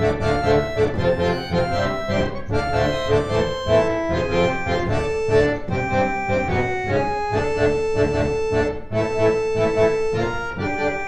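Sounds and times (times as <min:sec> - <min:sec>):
reed organs playing: 0:00.0 - 0:11.0.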